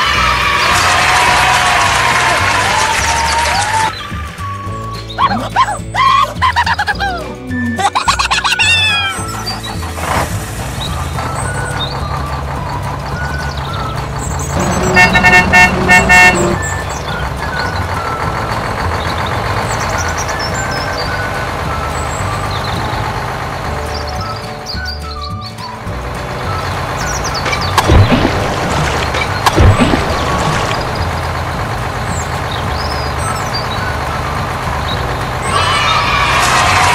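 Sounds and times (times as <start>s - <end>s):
background music: 0.0s - 36.9s
vehicle engine sound effect: 9.2s - 36.9s
pulsing horn-like honking: 14.5s - 18.0s.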